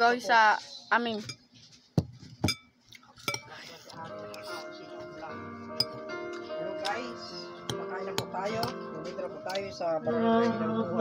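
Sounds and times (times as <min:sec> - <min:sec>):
metal spoon clinking on ceramic bowl: 0:02.4 - 0:03.5, 0:05.8 - 0:06.0.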